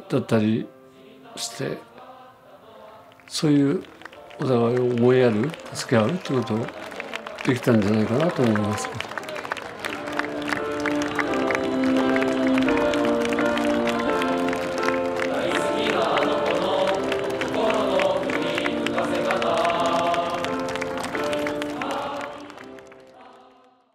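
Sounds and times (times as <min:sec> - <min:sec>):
choir holding long chords: 0:00.0 - 0:23.9
steady clapping: 0:03.1 - 0:23.4.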